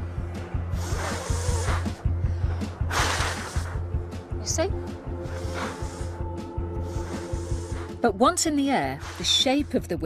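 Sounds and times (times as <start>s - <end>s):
background music with steady beat: 0.0s - 10.0s
person blowing across paper: 0.8s - 2.0s, 2.9s - 3.8s, 5.2s - 8.0s, 9.0s - 9.4s.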